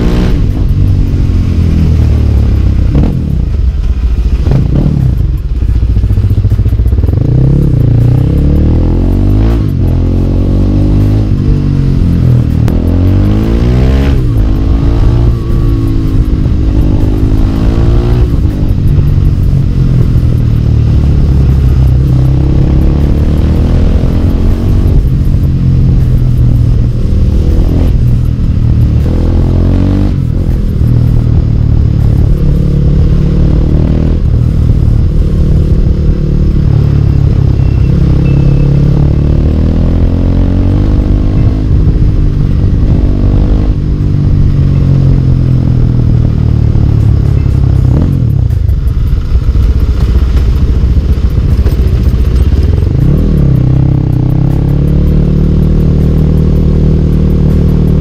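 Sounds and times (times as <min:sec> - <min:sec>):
motorcycle engine revving: 0:00.0 - 0:58.0
steady low rumble: 0:00.0 - 0:58.0.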